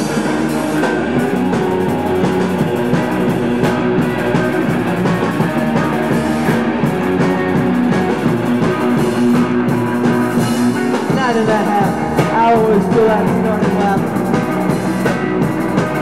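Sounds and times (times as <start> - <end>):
bass guitar: 0.0 - 16.0
drum kit steady beat: 0.0 - 16.0
electric guitars: 0.0 - 16.0.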